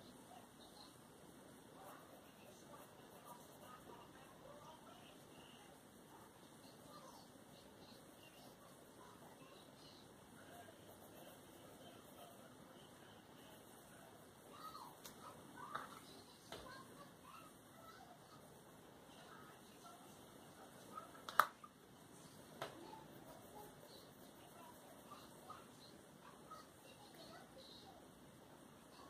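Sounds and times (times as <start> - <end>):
colouring with pencils: 0.0 - 29.0
pencils clicking on table: 21.2 - 21.6.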